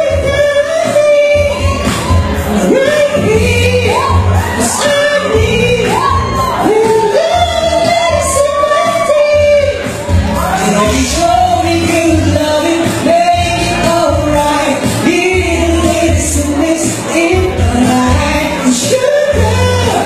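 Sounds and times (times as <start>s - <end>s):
backing music with bass beat: 0.0s - 20.0s
man singing into microphone: 0.0s - 20.0s.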